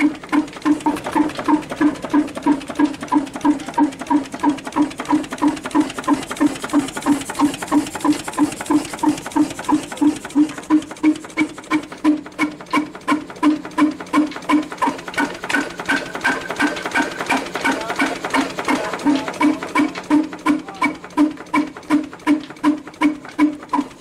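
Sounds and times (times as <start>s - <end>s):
stationary diesel engine running: 0.0s - 24.0s.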